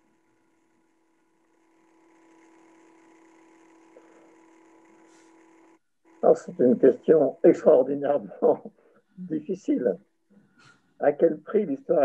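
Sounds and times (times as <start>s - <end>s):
faint microphone hum: 6.2s - 10.0s.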